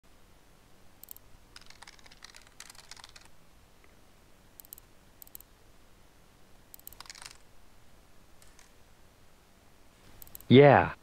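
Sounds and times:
computer keyboard typing: 1.0 - 3.3, 4.6 - 5.5, 6.7 - 7.4, 8.4 - 8.8, 10.2 - 10.5.

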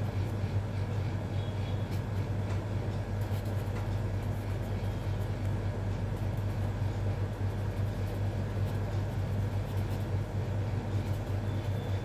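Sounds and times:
steady low hum: 0.0 - 12.0
pencil scratching on paper: 1.9 - 12.0.

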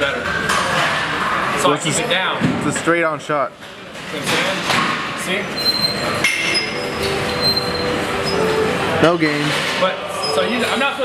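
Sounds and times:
weight room clatter: 3.7 - 7.8.

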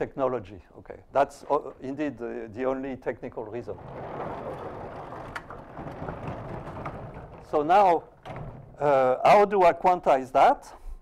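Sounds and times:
blackboard panels sliding: 1.1 - 9.5.

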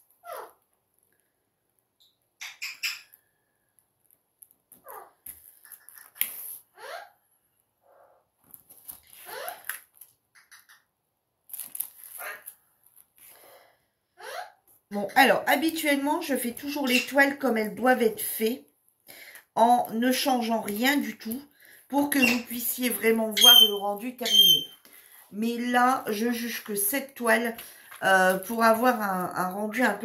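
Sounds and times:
adhesive tape crackling: 11.5 - 13.1.

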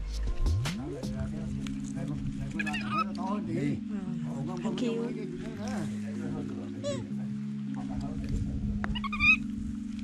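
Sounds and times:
background music: 0.0 - 10.0
baby monkey squealing: 2.6 - 3.2, 8.9 - 9.5.

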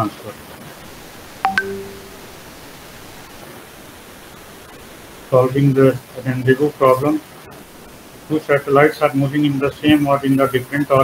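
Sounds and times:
background hiss: 0.0 - 11.0
electronic beep: 1.5 - 2.3.

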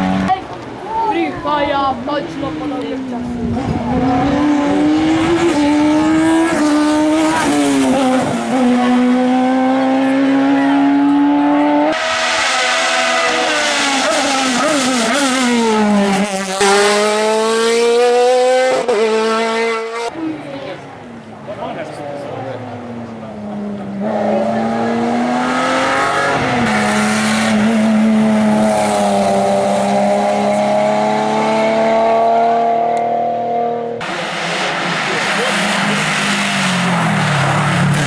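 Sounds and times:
race car engine at full throttle: 0.0 - 0.5, 2.1 - 38.0.

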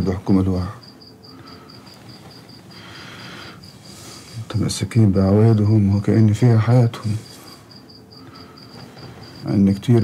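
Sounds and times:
crickets chirping: 0.0 - 10.0
soft hiss: 0.0 - 10.0.

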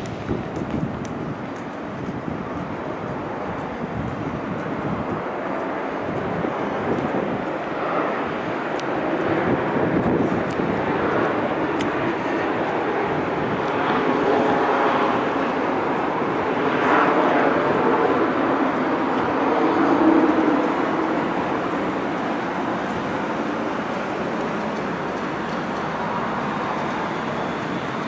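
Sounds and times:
road traffic hum: 0.0 - 28.0.

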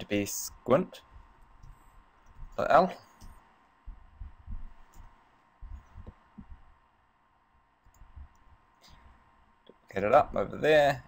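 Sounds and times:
faint steady hum: 0.0 - 11.0
low thumps at a desk: 3.9 - 4.8.

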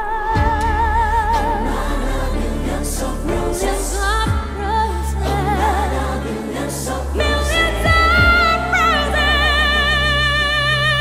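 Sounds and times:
woman singing a ballad: 0.0 - 2.4, 3.3 - 6.4, 7.1 - 11.0
backing choir: 0.0 - 11.0.

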